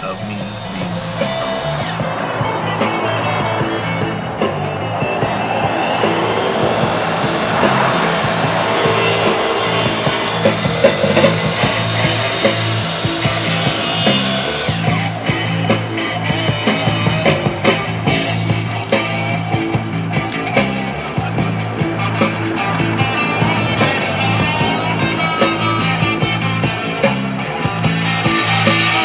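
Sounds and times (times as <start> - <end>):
bass line: 0.0 - 29.0
distorted electric guitar: 0.0 - 29.0.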